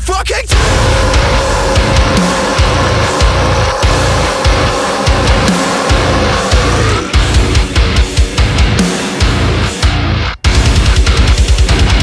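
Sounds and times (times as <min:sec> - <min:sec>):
drums with kick and cymbals: 0:00.0 - 0:12.0
distorted guitars: 0:00.5 - 0:12.0.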